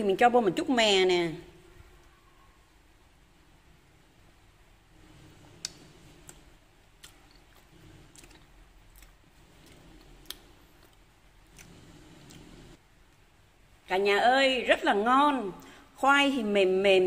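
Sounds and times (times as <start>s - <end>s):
soft chewing: 4.9s - 13.3s.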